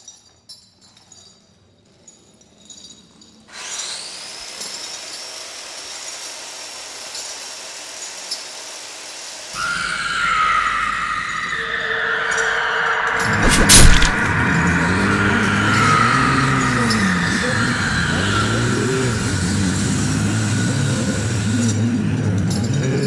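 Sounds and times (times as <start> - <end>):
faint tinkling: 0.0 - 3.5
squealing tone rising in pitch: 9.6 - 20.9
low rumble: 11.6 - 18.0
high hiss with whistling tone: 14.1 - 21.7.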